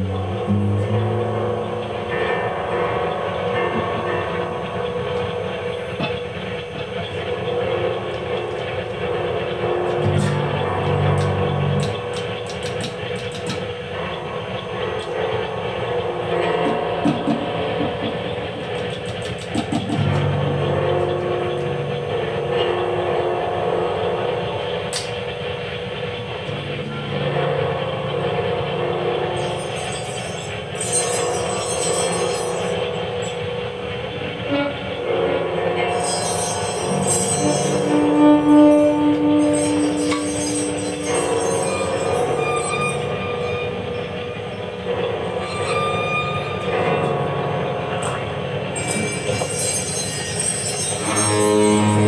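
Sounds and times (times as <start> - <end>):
held low notes: 0.0 - 49.7
industrial noise music: 0.0 - 52.0.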